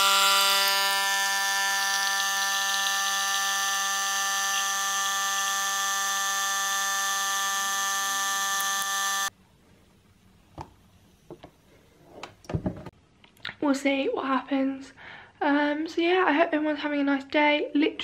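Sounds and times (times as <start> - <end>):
coffee machine pump humming: 0.0 - 9.3.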